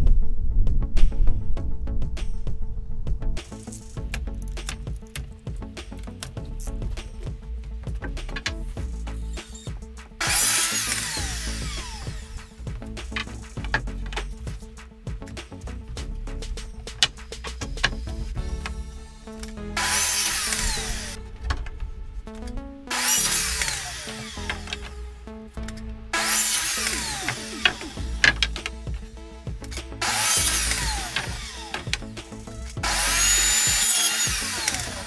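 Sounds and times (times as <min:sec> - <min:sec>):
high saw blade whine: 0:09.1 - 0:12.6, 0:18.8 - 0:21.3, 0:22.9 - 0:25.1, 0:26.1 - 0:35.0
miter saw cutting wood: 0:09.1 - 0:14.4, 0:19.8 - 0:21.2, 0:22.9 - 0:25.1, 0:26.1 - 0:35.0.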